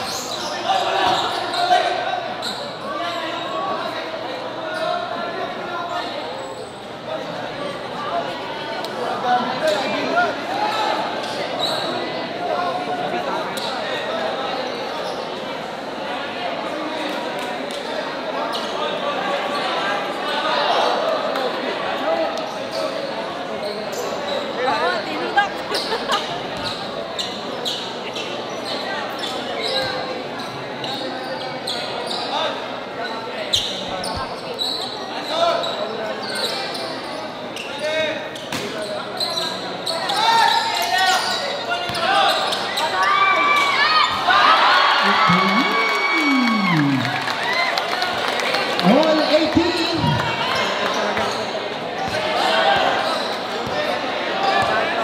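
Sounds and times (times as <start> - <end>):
crowd chatter and shouts: 0.0 - 55.0.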